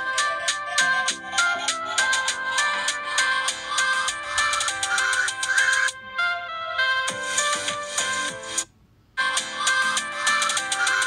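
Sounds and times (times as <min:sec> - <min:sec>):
electronic melody over percussion: 0:00.0 - 0:05.9.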